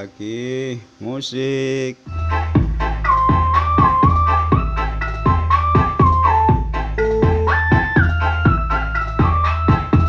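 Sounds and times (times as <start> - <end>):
held melody line: 2.1 - 10.0
music with deep bass: 2.1 - 10.0.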